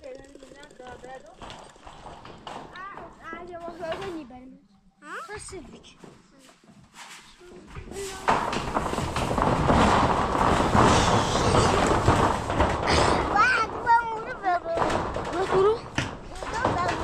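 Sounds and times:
plastic basin scraping metal roofing: 0:00.0 - 0:04.4, 0:07.8 - 0:17.0
child's voice: 0:02.7 - 0:06.6, 0:07.4 - 0:08.5, 0:12.9 - 0:17.0.

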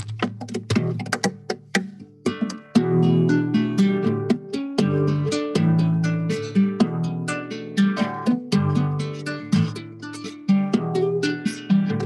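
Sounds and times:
acoustic guitar fingerpicked: 0:00.0 - 0:12.0.

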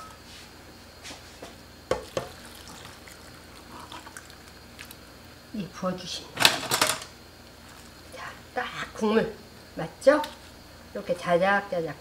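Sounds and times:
liquid pouring with wet splashes: 0:01.9 - 0:05.2.

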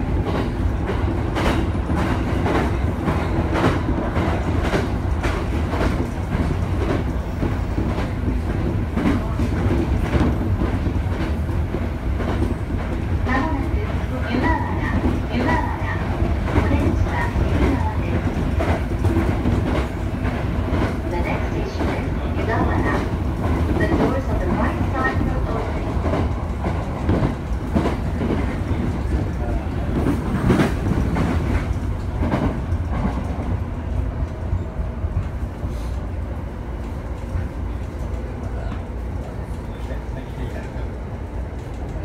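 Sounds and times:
train wheels rumbling on rail: 0:00.0 - 0:42.0
rail joint clicks: 0:00.1 - 0:42.0.

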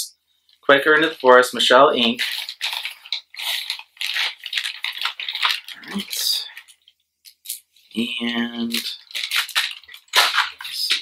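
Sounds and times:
plastic bag crinkling: 0:01.0 - 0:06.9, 0:08.6 - 0:11.0.

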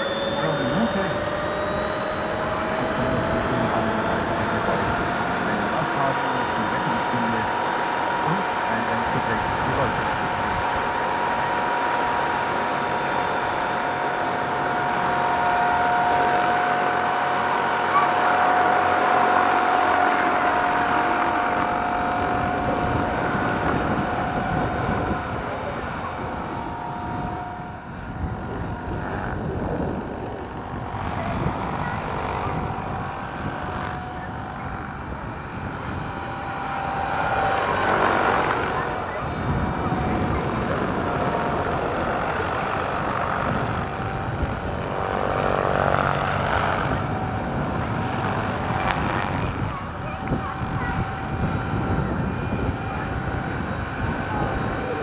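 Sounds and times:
electric motor and gear whine: 0:00.0 - 0:55.0
helicopter rotors rushing: 0:00.0 - 0:55.0.

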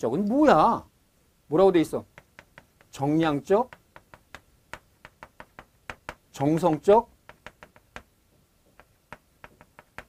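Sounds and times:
chalk tapping on chalkboard: 0:02.0 - 0:10.0.

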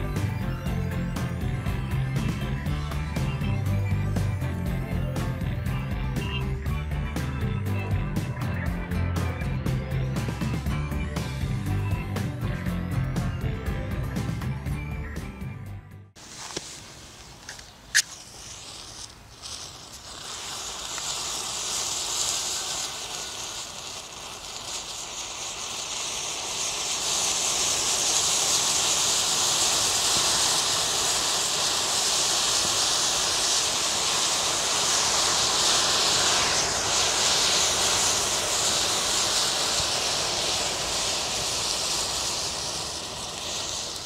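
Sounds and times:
match heads igniting with hissing: 0:16.2 - 0:44.0.

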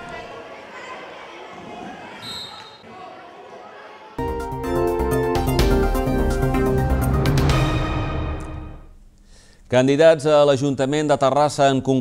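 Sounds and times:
children's voices echoing: 0:00.0 - 0:04.2.

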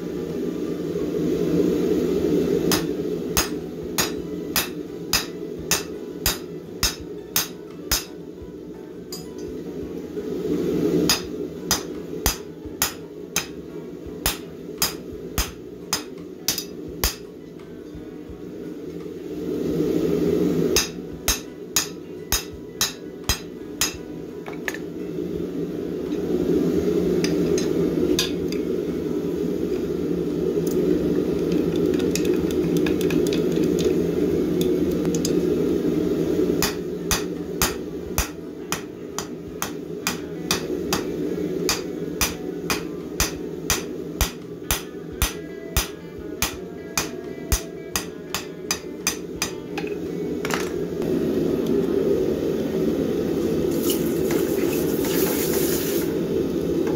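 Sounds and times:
hammer striking steel on anvil: 0:02.7 - 0:08.2, 0:09.1 - 0:09.5, 0:11.0 - 0:13.6, 0:14.2 - 0:17.3, 0:20.7 - 0:24.1, 0:27.6 - 0:28.5, 0:36.6 - 0:49.9.

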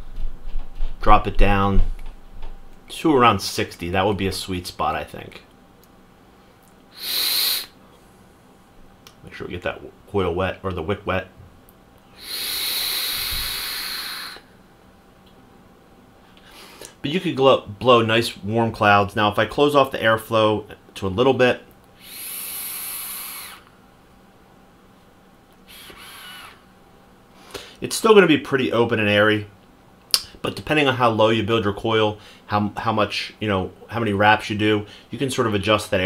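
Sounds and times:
air hiss through e-cigarette: 0:06.9 - 0:07.8, 0:12.2 - 0:14.5, 0:22.0 - 0:23.7, 0:25.6 - 0:26.6
faint wavering whistle: 0:25.7 - 0:26.6.

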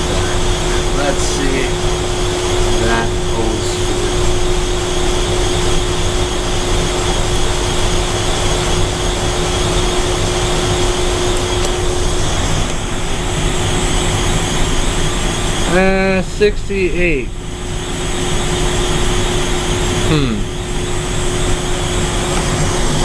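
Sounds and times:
refrigeration fan and compressor: 0:00.0 - 0:23.0
steady hum: 0:00.0 - 0:23.0.

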